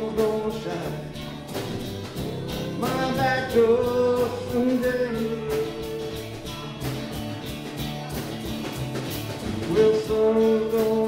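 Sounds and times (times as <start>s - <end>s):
acoustic band playing: 0.0s - 11.0s
strummed acoustic guitars: 0.0s - 11.0s.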